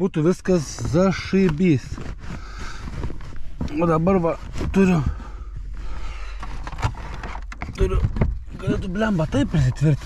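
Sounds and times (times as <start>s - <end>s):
rustling and scraping of handling: 0.0s - 10.0s.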